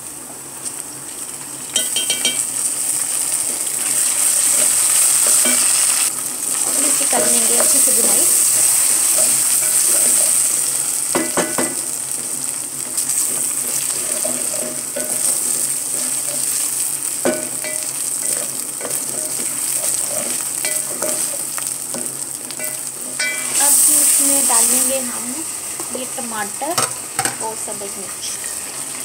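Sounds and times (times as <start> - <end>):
onions sizzling in oil: 0.0 - 29.0.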